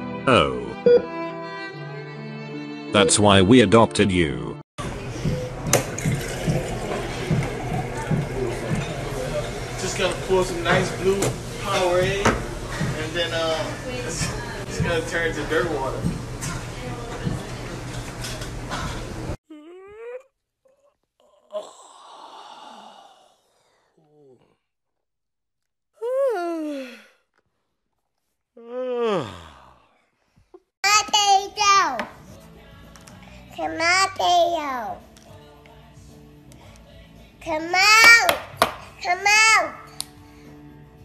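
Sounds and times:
violin melody: 0.7 - 3.4.

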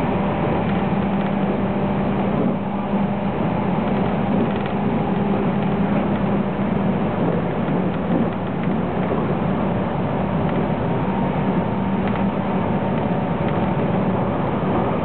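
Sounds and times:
train running gear rumble: 0.0 - 15.0.

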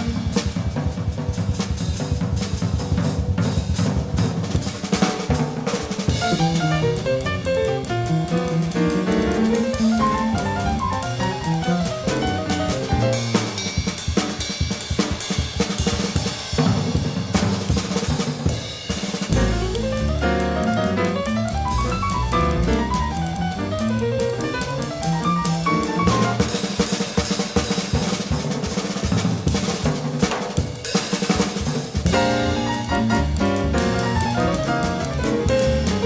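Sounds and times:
jazz drum kit playing: 0.0 - 36.0.

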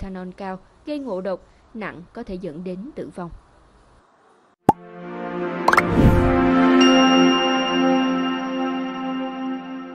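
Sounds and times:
rising sweep: 5.7 - 6.6.

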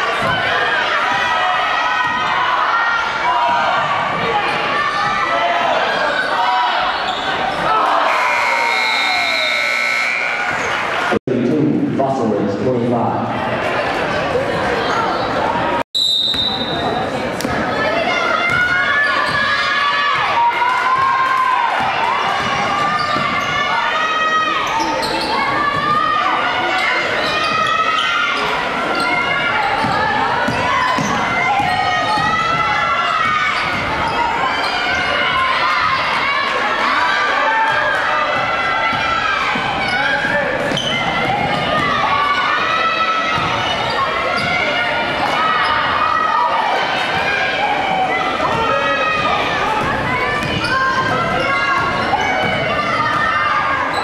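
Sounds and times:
voices calling out in hall: 0.0 - 54.0.

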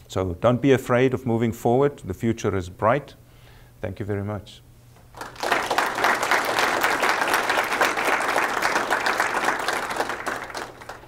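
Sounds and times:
audience applauding: 5.1 - 11.0.

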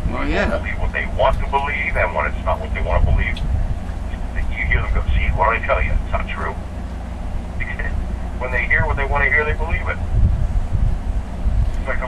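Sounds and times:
person talking: 0.0 - 3.5, 4.1 - 6.6, 7.6 - 10.0, 11.8 - 12.0
steady low hum: 0.0 - 12.0.

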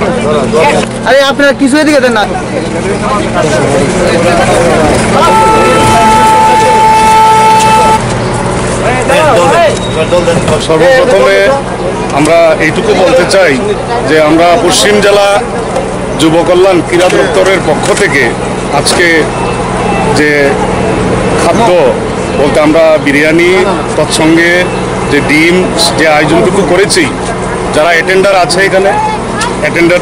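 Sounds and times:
street noise: 0.0 - 30.0
voices chattering: 0.0 - 30.0
vehicle horn long note: 5.1 - 8.1.

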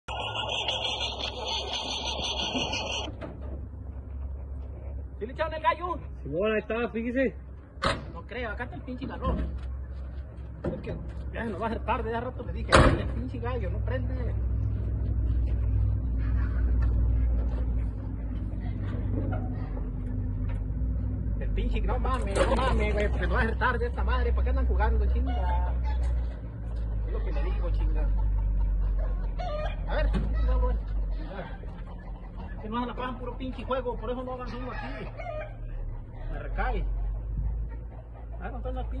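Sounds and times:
rooster crowing and clucking: 29.3 - 29.9, 34.5 - 35.8.

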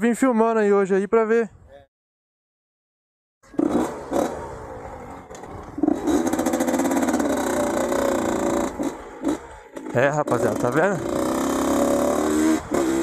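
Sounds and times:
dirt bike engine revving: 3.4 - 13.0.

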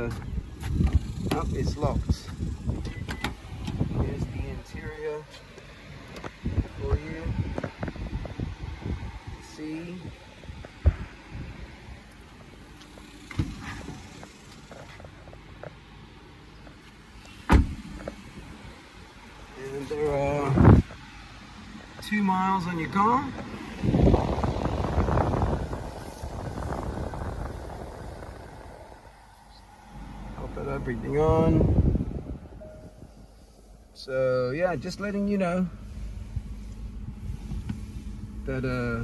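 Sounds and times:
gusty rumbling on microphone: 0.0 - 5.0, 6.2 - 9.4, 10.0 - 12.0, 20.4 - 21.0, 23.4 - 33.4
dull thump: 10.8 - 11.1, 17.5 - 18.2.

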